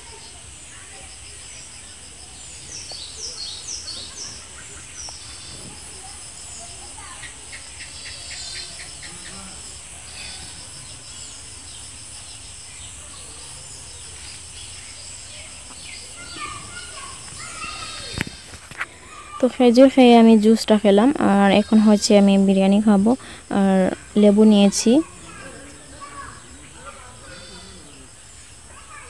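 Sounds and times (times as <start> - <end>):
insect chirring: 0.0 - 29.0
small birds calling: 0.0 - 29.0.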